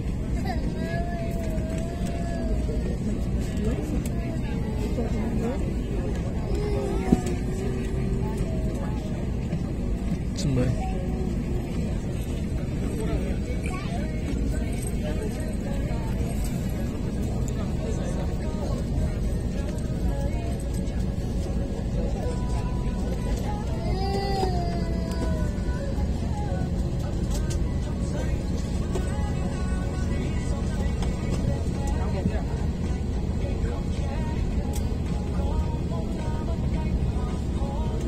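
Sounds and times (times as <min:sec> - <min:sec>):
airliner cabin hum: 0:00.0 - 0:38.0
faint passenger chatter: 0:00.0 - 0:38.0
faint voices: 0:00.0 - 0:38.0.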